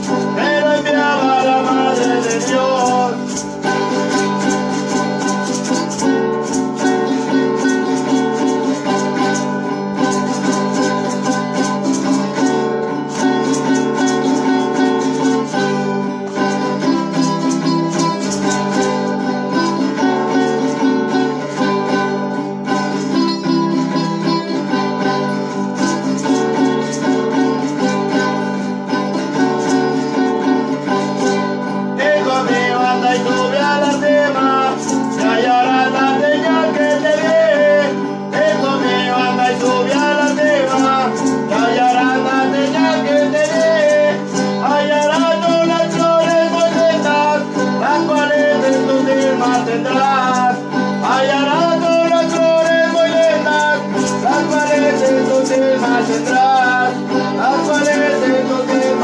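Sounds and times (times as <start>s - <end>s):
person singing: 0.0s - 59.0s
plucked string instrument strummed: 0.0s - 59.0s.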